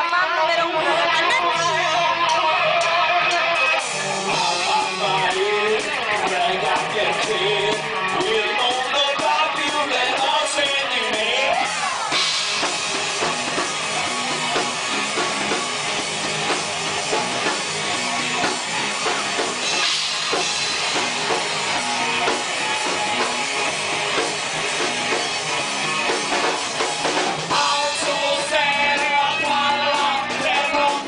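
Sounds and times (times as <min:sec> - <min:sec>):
person singing: 0:00.0 - 0:12.4, 0:27.5 - 0:31.0
bass: 0:00.0 - 0:31.0
guitar: 0:00.0 - 0:31.0
drum-kit beat: 0:00.4 - 0:31.0.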